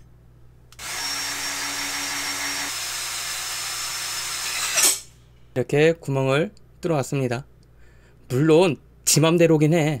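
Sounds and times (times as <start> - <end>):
electric drill whining: 0.8 - 5.1.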